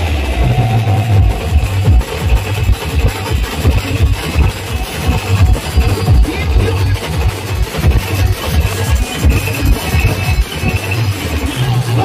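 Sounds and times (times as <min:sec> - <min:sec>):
amplified melody and bass line: 0:00.0 - 0:12.0
marching bass drums and snares: 0:00.0 - 0:12.0.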